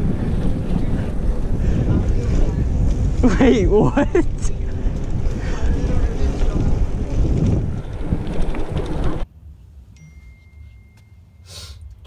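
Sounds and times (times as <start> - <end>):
wind buffeting microphone: 0.0 - 9.3
faint steady high tone: 9.9 - 12.0.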